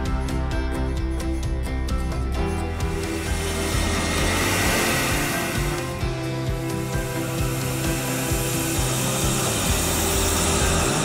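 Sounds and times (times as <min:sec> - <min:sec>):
background music: 0:00.0 - 0:11.0
bandsaw cutting wood: 0:02.7 - 0:11.0.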